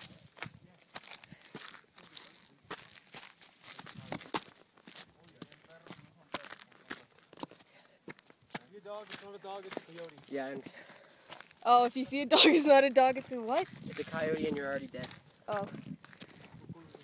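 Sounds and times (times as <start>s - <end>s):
footsteps crunching on gravel: 0.0s - 17.0s.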